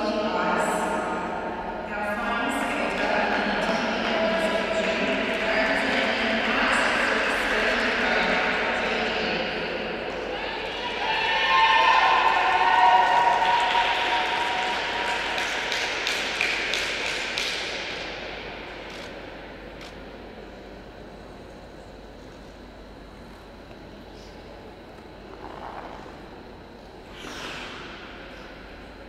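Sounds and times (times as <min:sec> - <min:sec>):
spectators cheering and clapping: 0:10.1 - 0:18.1.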